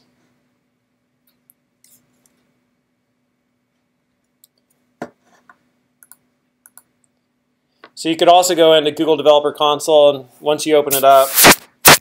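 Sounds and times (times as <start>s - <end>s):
computer mouse clicking: 6.0s - 6.9s.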